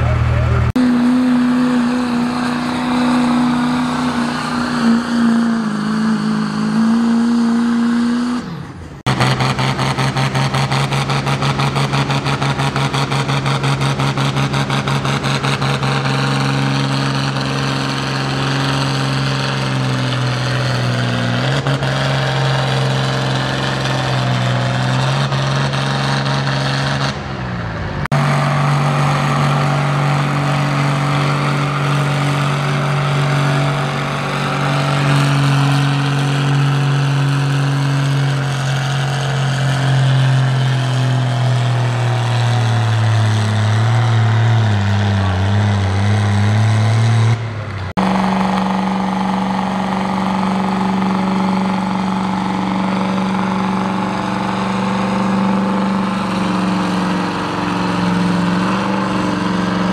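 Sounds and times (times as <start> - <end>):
tractor engines at high revs: 0.0 - 59.9.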